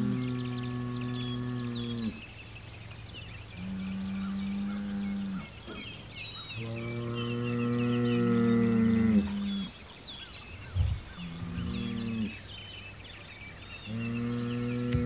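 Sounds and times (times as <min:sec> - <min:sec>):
bulls bellowing: 0:00.0 - 0:02.2, 0:06.6 - 0:09.7, 0:13.9 - 0:15.0
birds chirping: 0:00.0 - 0:15.0.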